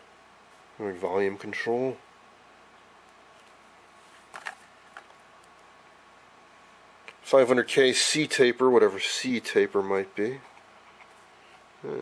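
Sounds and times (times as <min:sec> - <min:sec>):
room hiss: 0:00.0 - 0:12.0.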